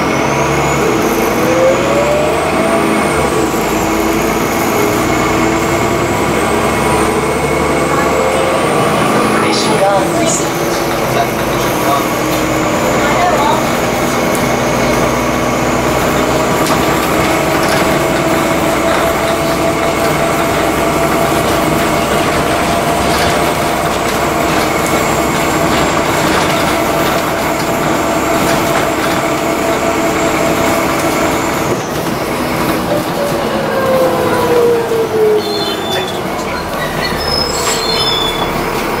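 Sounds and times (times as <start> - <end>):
bus drivetrain whine: 0.0 - 39.0
bus engine and road noise: 0.0 - 39.0.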